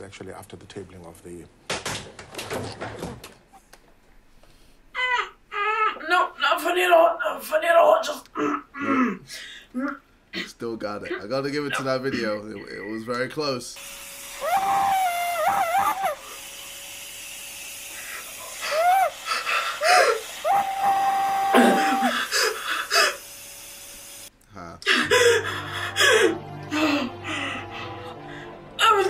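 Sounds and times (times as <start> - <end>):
vacuum cleaner running: 13.8 - 24.3
vacuum nozzle squealing on wood: 14.3 - 16.4, 18.6 - 23.1.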